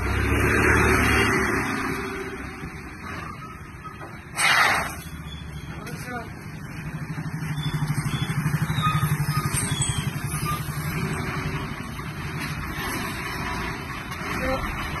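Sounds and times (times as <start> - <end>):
vehicle engine throbbing: 5.0 - 15.0.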